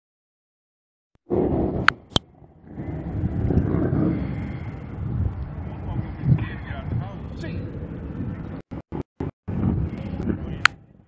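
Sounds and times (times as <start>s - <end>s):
wind on microphone: 1.3s - 11.0s
vehicle engines rumbling: 1.4s - 11.0s.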